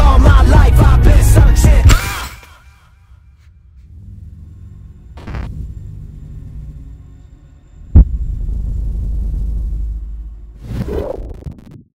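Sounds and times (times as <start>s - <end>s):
deep rumble: 3.8s - 11.9s
heavy low boom: 7.9s - 10.6s.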